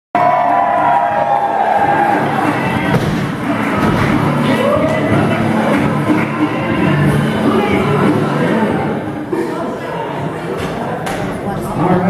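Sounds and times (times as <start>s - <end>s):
crowd cheering: 0.1s - 8.8s
music playing: 0.2s - 10.6s.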